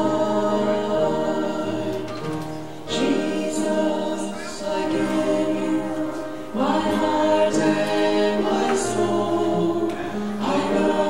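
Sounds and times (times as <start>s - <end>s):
people singing a church song: 0.0s - 11.0s.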